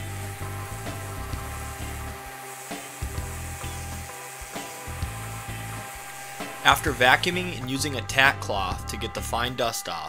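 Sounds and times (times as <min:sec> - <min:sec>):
orbital sander hissing: 0:00.0 - 0:09.7
background music: 0:00.0 - 0:10.0.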